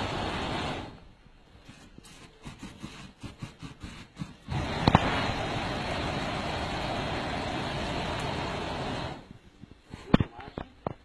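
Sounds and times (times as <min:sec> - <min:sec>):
exhaust flame rushing: 0:00.0 - 0:01.2, 0:02.1 - 0:10.0.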